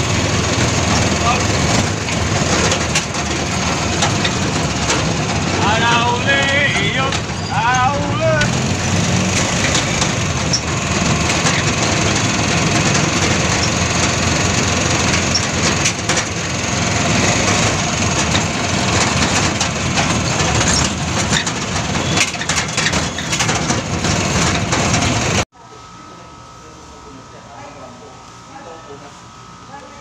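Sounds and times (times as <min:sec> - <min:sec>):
vehicle body rattling: 0:00.0 - 0:25.4
vehicle ride noise: 0:00.0 - 0:25.5.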